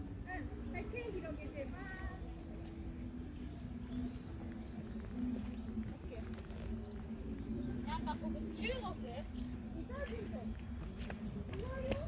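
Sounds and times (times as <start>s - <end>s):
constant hum: 0.0s - 12.0s.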